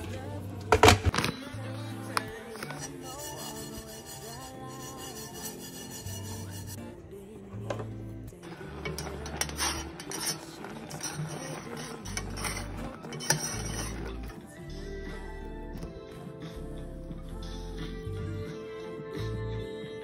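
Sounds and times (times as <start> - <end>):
background music with bass line: 0.0 - 10.3, 12.0 - 20.0
spoon scraping a saucepan: 2.5 - 6.8, 8.4 - 14.4.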